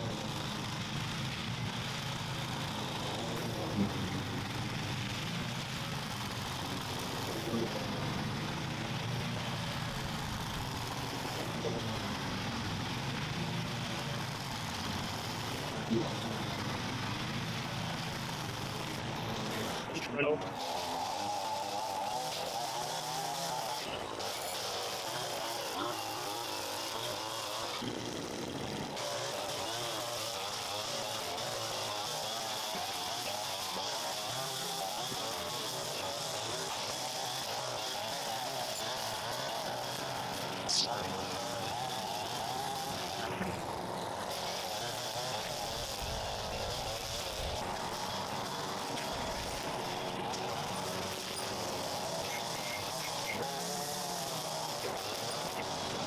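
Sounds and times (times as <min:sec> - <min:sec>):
string trimmer cutting grass: 0:00.0 - 0:56.0.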